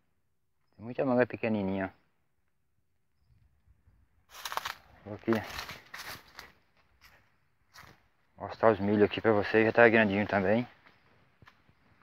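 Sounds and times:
faint footsteps on ground: 4.3 - 12.0.

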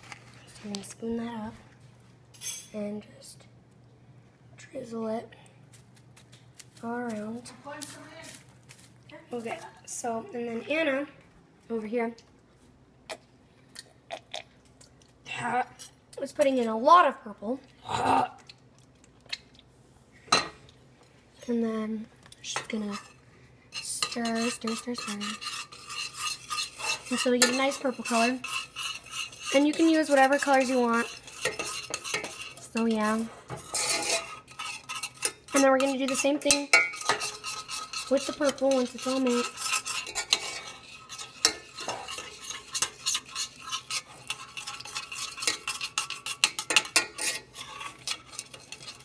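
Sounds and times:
spoon scraping a steel saucepan: 22.5 - 49.0.

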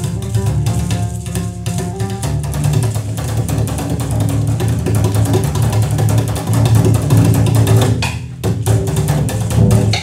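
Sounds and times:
double bass improvisation: 0.0 - 10.0.

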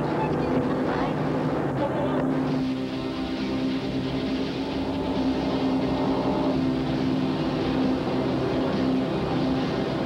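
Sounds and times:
car engine droning: 0.0 - 10.0.

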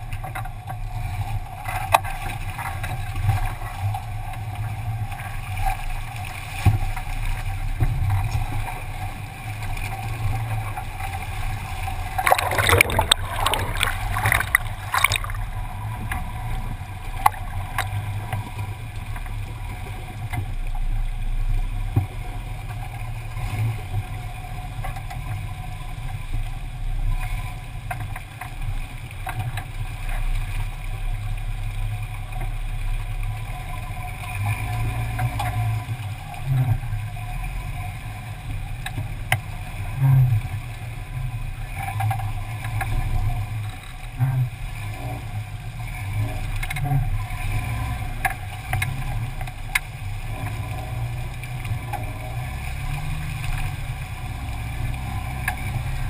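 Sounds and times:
creek water rushing and splashing: 0.0 - 56.0
low vehicle engine rumble: 0.0 - 56.0.

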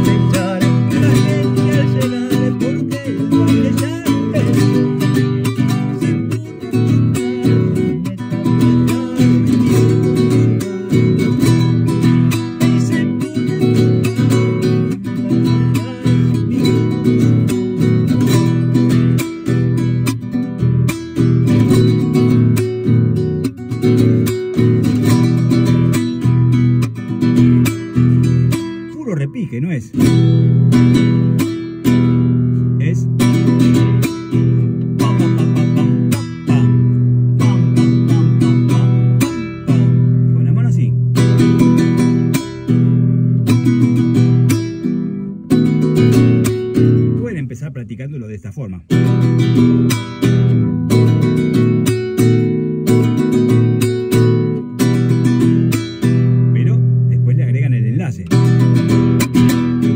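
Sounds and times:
man singing: 0.0 - 19.9, 32.7 - 42.4, 56.4 - 58.6
classical guitar strummed fast: 0.0 - 59.9.

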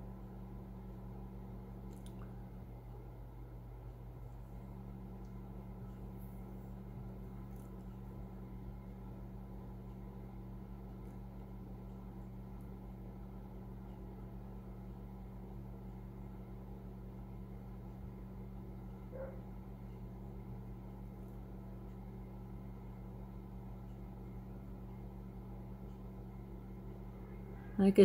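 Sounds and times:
faint low hum: 0.0 - 28.0.

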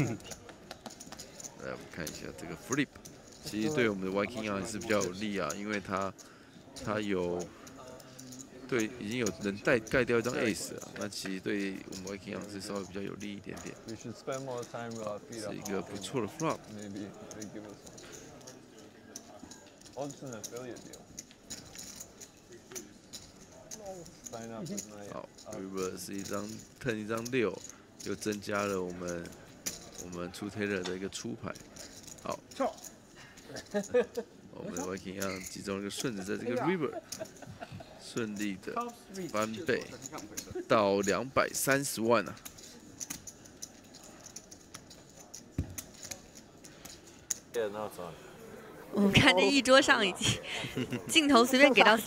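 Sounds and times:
person speaking: 48.9 - 52.0.

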